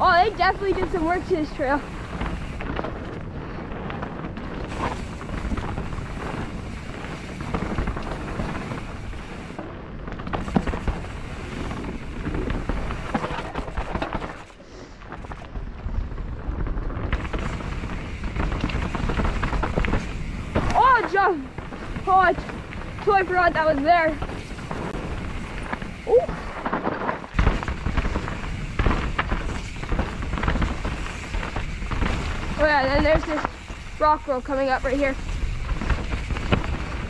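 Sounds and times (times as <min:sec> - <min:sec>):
wind buffeting microphone: 0:00.0 - 0:14.4, 0:15.0 - 0:37.0
bike tyres rolling over dirt: 0:00.0 - 0:37.0
bike rattling knocks: 0:10.2 - 0:14.5, 0:17.1 - 0:37.0.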